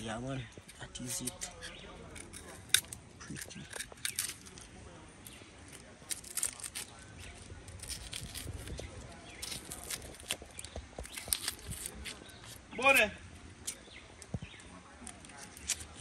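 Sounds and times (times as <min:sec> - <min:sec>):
knife scraping onion skin: 0:06.1 - 0:12.6.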